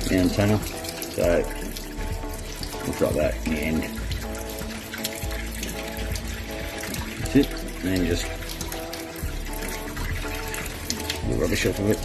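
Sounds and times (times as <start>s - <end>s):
background music with held notes: 0.0s - 12.0s
tap water running into sink: 0.0s - 12.0s.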